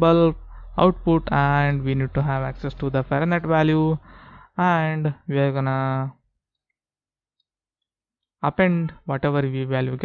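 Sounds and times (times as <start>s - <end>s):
man speaking: 0.0s - 4.0s, 4.6s - 6.2s.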